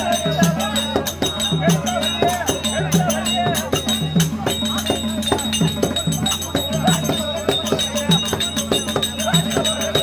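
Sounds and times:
drum beating: 0.0 - 10.0
metal bells or cymbals ringing: 0.0 - 10.0.

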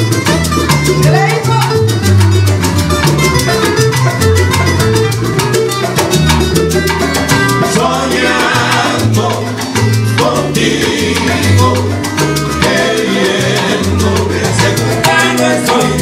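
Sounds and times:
bass line: 0.0 - 16.0
live salsa band playing: 0.0 - 16.0
steady percussion: 0.0 - 16.0.

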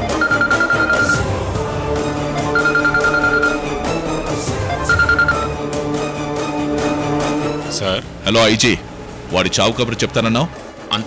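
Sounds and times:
mobile phone ringing: 0.0 - 1.3, 2.5 - 3.7, 4.8 - 5.6
background score music: 0.0 - 11.0.

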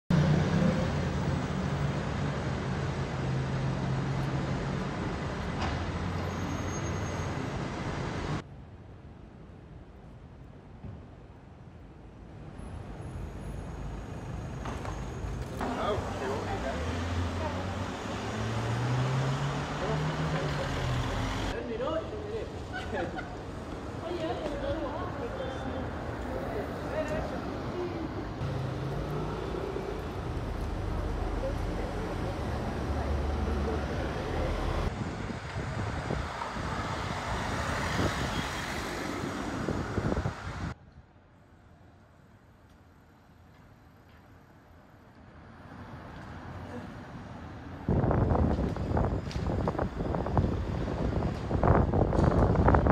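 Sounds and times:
street hum: 0.1 - 52.9
car driving past: 15.6 - 21.6
vehicle engine driving past: 15.9 - 21.6, 28.4 - 34.9
people's voices: 19.6 - 34.9.

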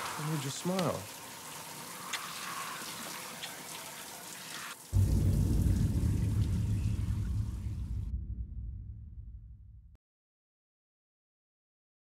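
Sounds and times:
loud deep rumble: 5.0 - 10.0.

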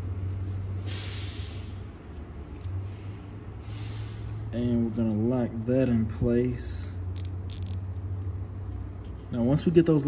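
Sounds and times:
zip tie ratcheting: 7.2 - 7.8.

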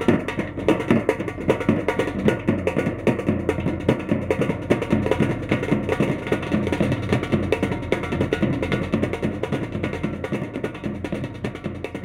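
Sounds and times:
folk hand drumming: 0.0 - 12.0.

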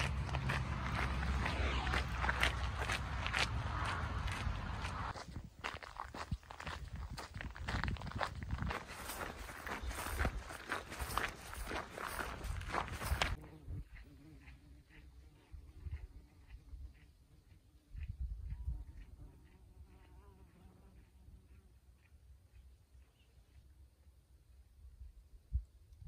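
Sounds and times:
footsteps crunching on gravel: 0.0 - 13.4.

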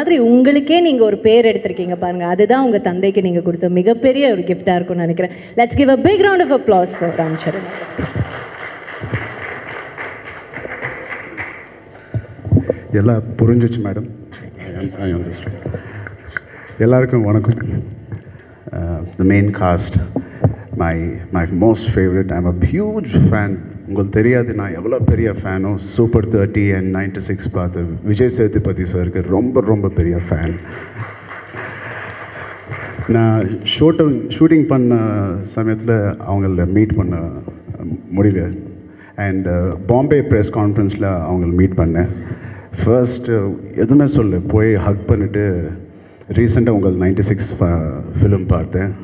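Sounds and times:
audience applauding: 6.8 - 12.3, 30.3 - 33.6
microphone handling thumps: 12.1 - 12.9.

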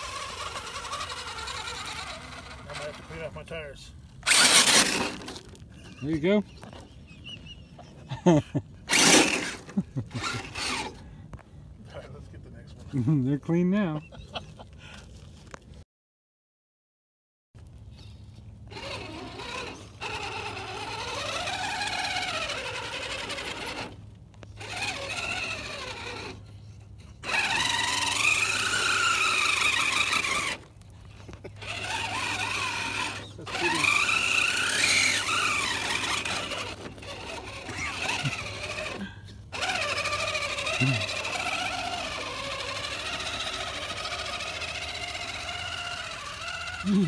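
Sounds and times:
rc car motor whining: 0.0 - 6.9, 8.9 - 11.0, 18.0 - 47.0
gritty scraping of tires: 0.0 - 13.9, 17.6 - 47.0.

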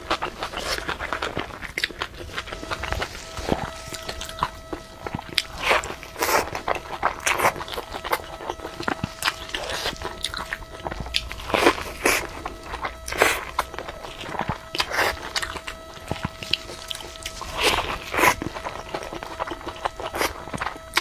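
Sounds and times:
crisp crackling bites: 0.0 - 21.0
wet chewing: 0.0 - 21.0.

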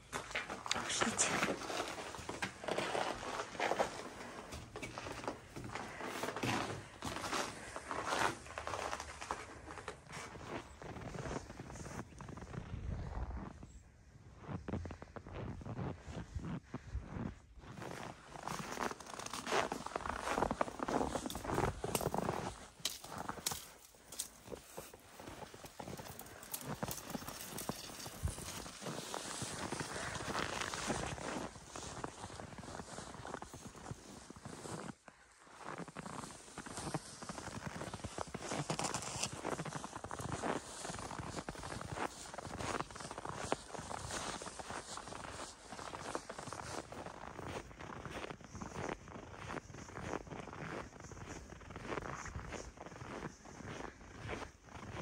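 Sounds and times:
footsteps crunching in snow: 0.0 - 13.6, 14.4 - 55.0.

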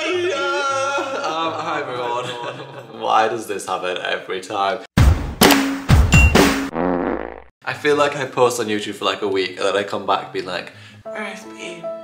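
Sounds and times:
man singing dramatically: 0.0 - 2.6.

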